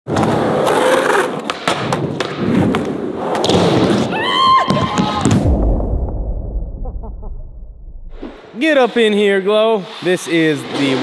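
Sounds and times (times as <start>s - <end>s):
skateboard wheels rolling: 0.1s - 5.2s.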